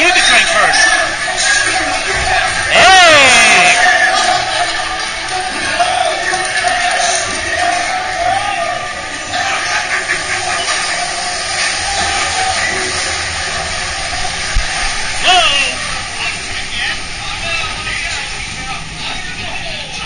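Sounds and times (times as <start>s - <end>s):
amusement ride background music: 0.0s - 20.0s
rushing flume water: 0.0s - 20.0s.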